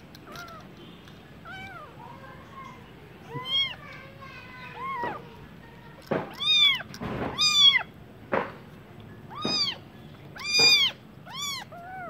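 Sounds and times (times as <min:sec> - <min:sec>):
kittens meowing: 0:01.4 - 0:02.0, 0:03.3 - 0:03.8, 0:06.3 - 0:07.9, 0:09.3 - 0:12.0.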